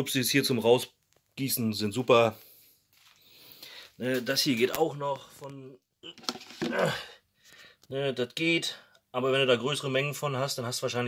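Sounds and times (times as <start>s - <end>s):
man talking: 0.0s - 2.4s, 4.0s - 7.1s, 7.9s - 11.0s.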